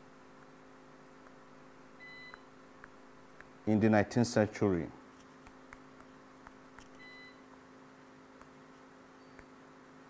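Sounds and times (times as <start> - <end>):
low electrical hum: 0.0 - 10.0
faint beep: 7.0 - 7.4.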